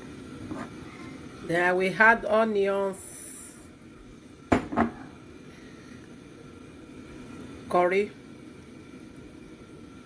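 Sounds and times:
knocks against cooking pot: 0:04.5 - 0:04.9.

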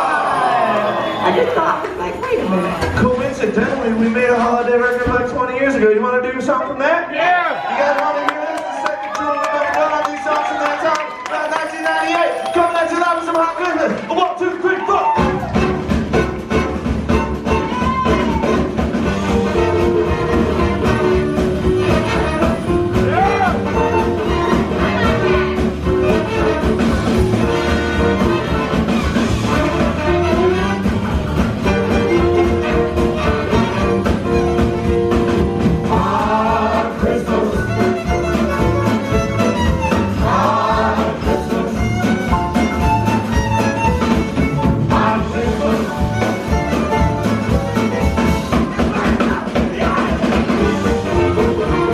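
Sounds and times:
swing jazz band playing: 0:15.2 - 0:51.9.

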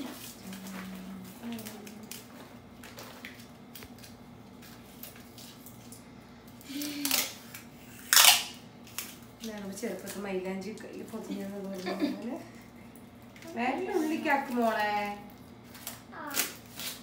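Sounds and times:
adhesive tape peeling off roll: 0:15.7 - 0:17.0.

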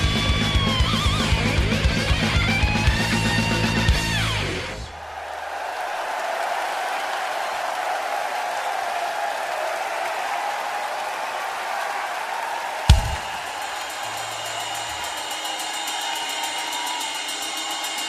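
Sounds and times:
crowd cheering: 0:00.0 - 0:18.0.

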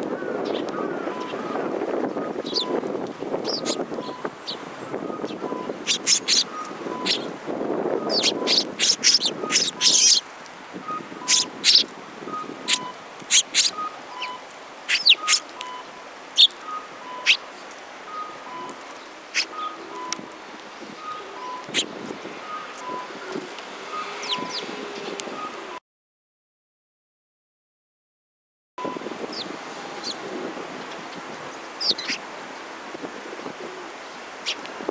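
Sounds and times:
sparrows chirping: 0:00.4 - 0:02.8, 0:03.4 - 0:07.3, 0:08.0 - 0:20.2, 0:24.0 - 0:25.2, 0:30.8 - 0:32.2.

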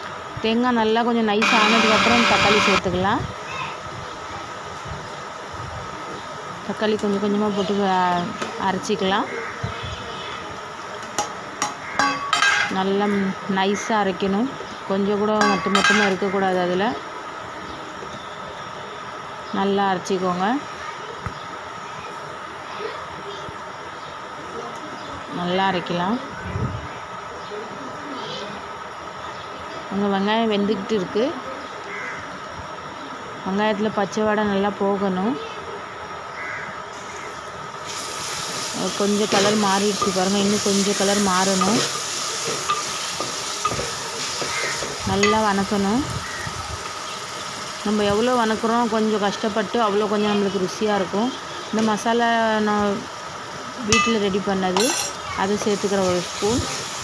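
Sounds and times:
frying hiss: 0:00.0 - 0:57.0
steady background hiss: 0:00.0 - 0:57.0.

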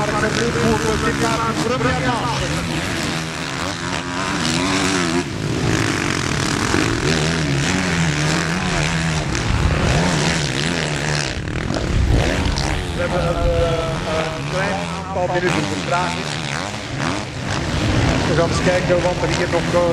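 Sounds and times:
motocross engines revving: 0:00.0 - 0:19.9.

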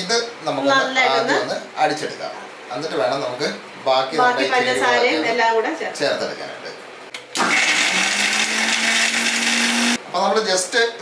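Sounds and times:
blender motor hum: 0:07.2 - 0:10.0.

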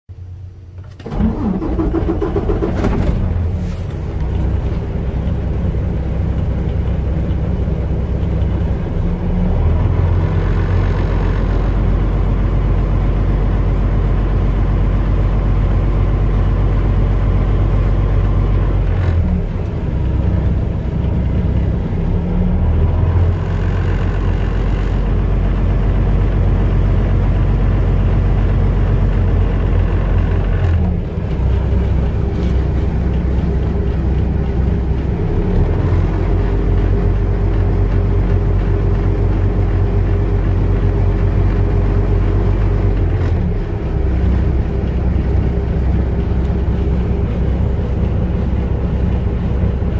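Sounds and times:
diesel engine idling: 0:00.2 - 0:49.9.

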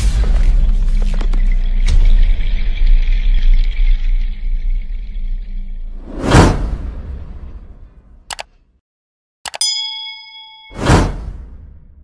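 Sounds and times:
loud whoosh: 0:06.0 - 0:07.8.

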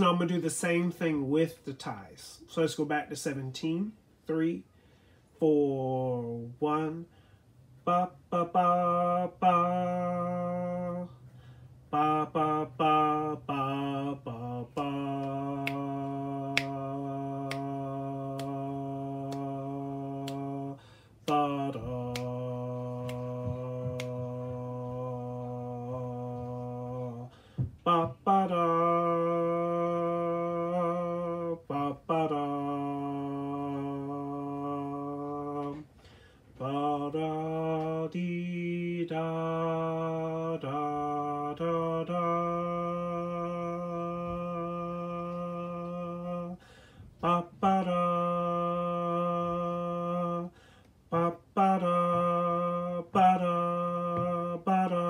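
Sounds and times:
man singing long low notes: 0:05.4 - 0:07.1, 0:07.8 - 0:35.9, 0:36.5 - 0:55.0.

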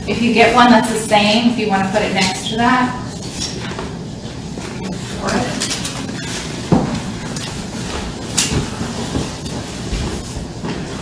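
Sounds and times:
handling noises: 0:02.2 - 0:11.0.

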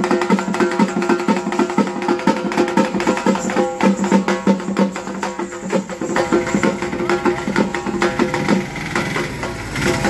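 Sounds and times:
frame drum beaten quickly: 0:00.0 - 0:10.0
truck engine passing: 0:06.0 - 0:10.0.

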